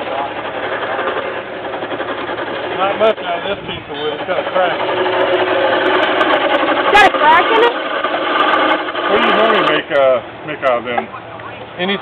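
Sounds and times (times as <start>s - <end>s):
chisel scraping spinning wood: 0.0s - 10.0s.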